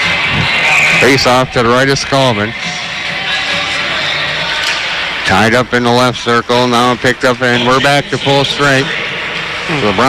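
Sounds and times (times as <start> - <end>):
arena noise: 0.0 - 10.0
faint music: 0.0 - 10.0.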